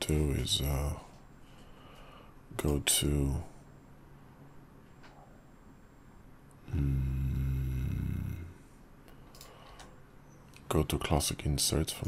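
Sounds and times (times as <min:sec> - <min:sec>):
man humming hmm: 0:06.6 - 0:08.8.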